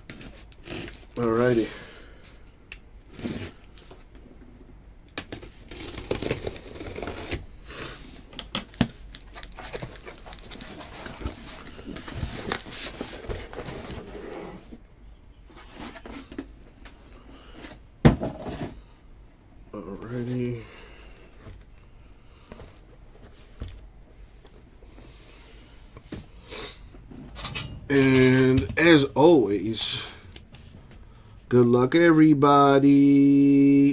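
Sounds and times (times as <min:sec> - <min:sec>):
packaging rustling and tearing: 0:05.1 - 0:07.4, 0:08.4 - 0:14.2.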